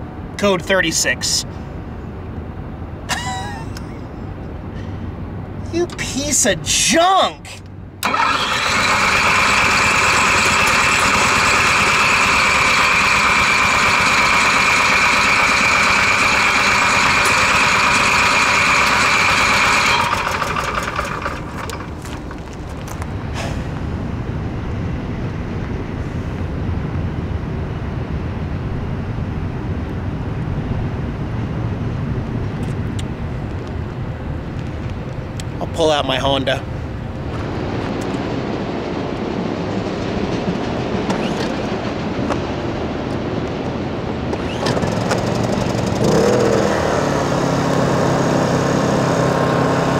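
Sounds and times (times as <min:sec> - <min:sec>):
low engine hum: 0:07.5 - 0:49.9
generator running with high whine: 0:07.6 - 0:23.2, 0:40.9 - 0:49.9.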